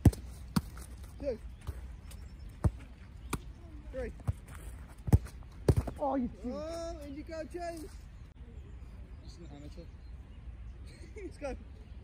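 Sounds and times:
football thuds: 0.0 - 1.9, 2.6 - 6.1.

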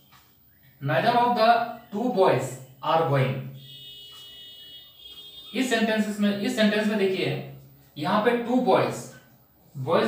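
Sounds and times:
man speaking: 0.8 - 3.6, 5.5 - 10.0.

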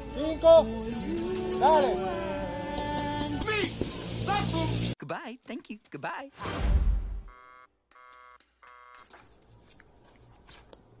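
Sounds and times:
electronic buzzer tone: 7.2 - 9.1.

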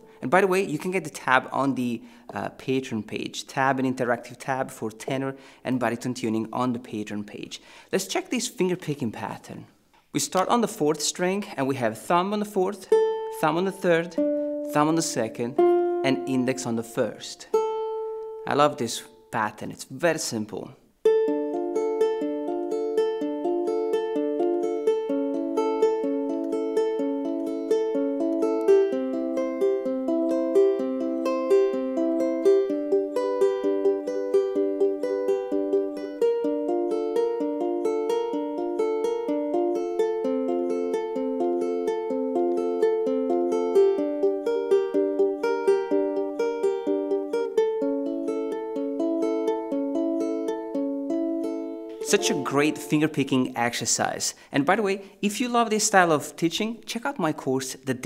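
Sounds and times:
ukulele fingerpicked arpeggios: 0.0 - 7.5, 10.2 - 19.3, 20.4 - 54.0.

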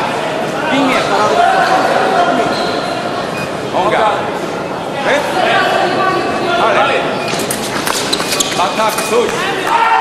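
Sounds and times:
voices in a large hall: 0.0 - 10.0.

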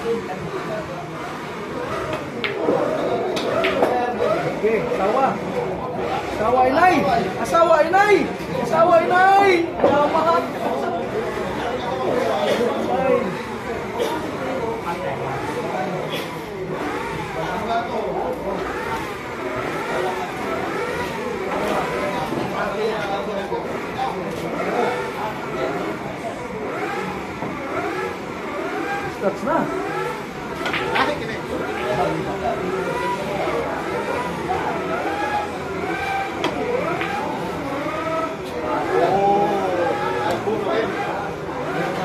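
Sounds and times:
pool balls clicking together: 2.1 - 4.1, 30.6 - 31.2
engine revving: 13.2 - 42.0
cue striking ball: 30.6 - 31.1.

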